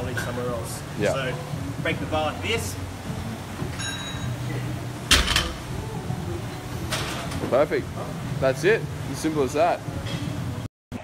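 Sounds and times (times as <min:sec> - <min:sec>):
gym background noise: 0:00.0 - 0:10.7
metallic clink of barbell: 0:03.8 - 0:04.3.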